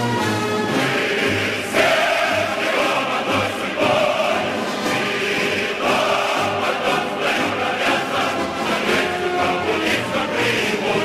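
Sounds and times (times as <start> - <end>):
choir singing with orchestra: 0.0 - 11.0.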